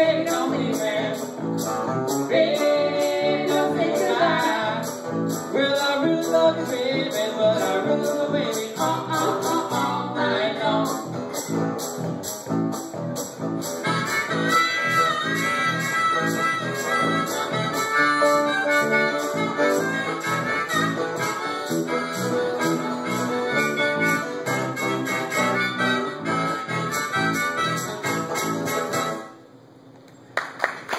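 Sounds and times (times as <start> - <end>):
bass guitar: 0.0 - 29.4
harmonica bending notes: 0.0 - 29.4
acoustic guitar strumming: 0.0 - 29.5.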